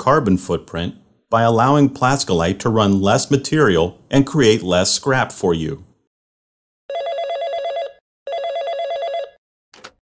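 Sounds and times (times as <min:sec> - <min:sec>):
desk telephone ringing: 0:06.9 - 0:09.4.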